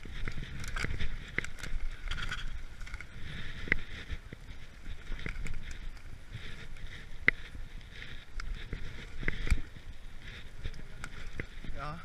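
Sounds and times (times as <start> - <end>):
bike tyres crunching leaves: 0.0 - 12.0
twigs clicking and knocking: 0.0 - 12.0.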